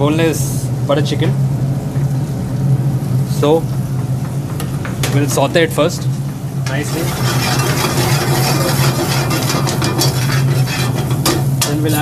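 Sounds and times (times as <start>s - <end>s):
kitchen equipment humming: 0.0s - 12.0s.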